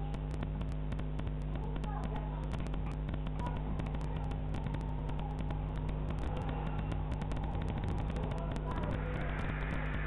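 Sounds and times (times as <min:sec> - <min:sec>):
crackling clicks: 0:00.0 - 0:10.0
steady low hum: 0:00.0 - 0:10.0.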